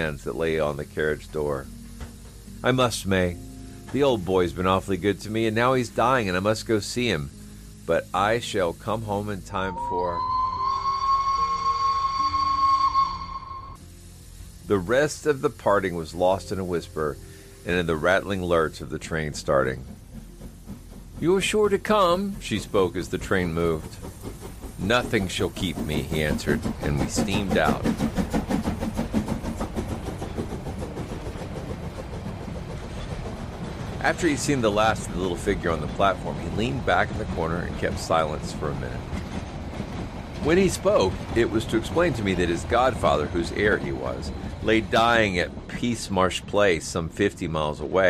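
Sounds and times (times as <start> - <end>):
low train rumble: 0.0 - 48.0
steam train chuffing: 0.0 - 48.0
steam locomotive whistle blast: 9.6 - 15.0.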